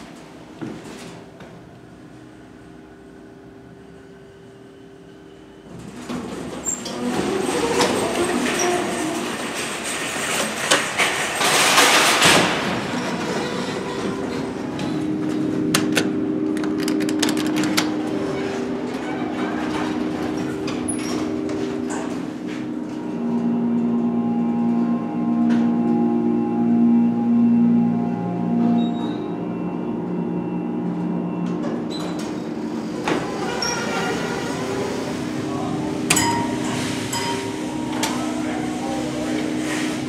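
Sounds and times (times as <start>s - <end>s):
elevator machinery rattling rumble: 5.6s - 40.0s.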